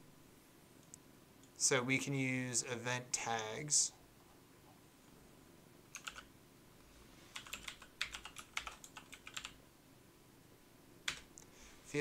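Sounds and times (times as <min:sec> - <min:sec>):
computer keyboard typing: 0:05.9 - 0:06.3, 0:07.3 - 0:09.6, 0:11.1 - 0:11.3.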